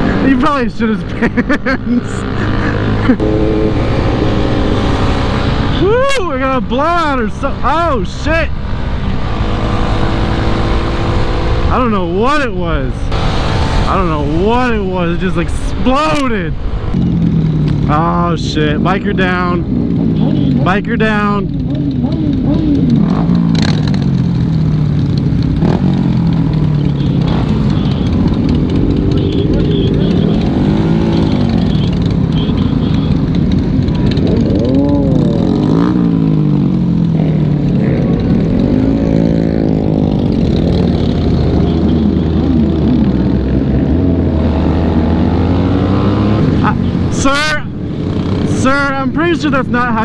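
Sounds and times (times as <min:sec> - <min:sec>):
motorcycle engines revving: 0:00.0 - 0:50.0
wind and road noise: 0:00.0 - 0:50.0.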